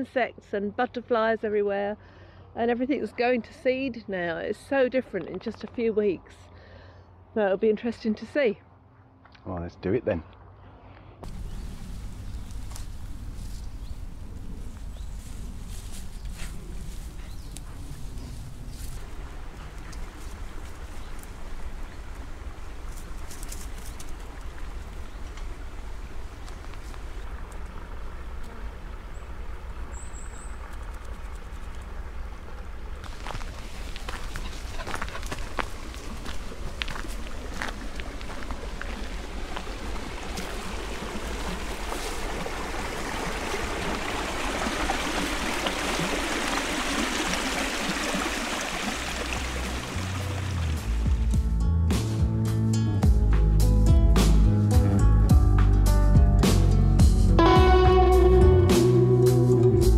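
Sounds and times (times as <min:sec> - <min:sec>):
stream rushing over logs: 0:18.9 - 0:51.3.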